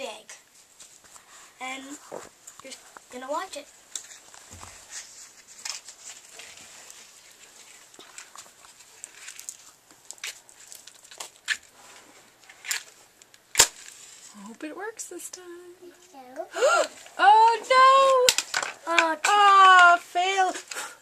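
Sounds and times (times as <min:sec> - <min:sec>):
matchbox clicks and rustles: 0:12.4 - 0:14.3, 0:18.0 - 0:19.5
match striking and flaring: 0:13.5 - 0:14.3.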